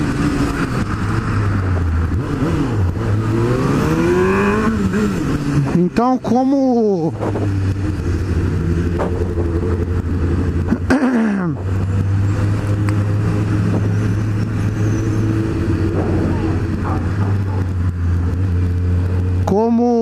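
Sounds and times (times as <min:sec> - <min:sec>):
motorcycle engine running: 0:07.2 - 0:20.0.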